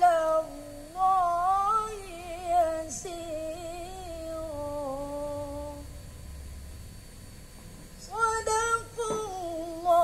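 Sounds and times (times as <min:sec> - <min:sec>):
boy reciting melodically: 0:08.0 - 0:10.0.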